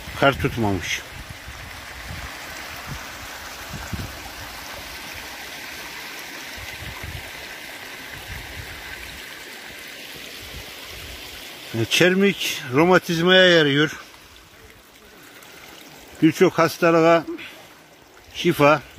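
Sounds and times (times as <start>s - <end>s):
stream water rushing: 0.0s - 18.9s.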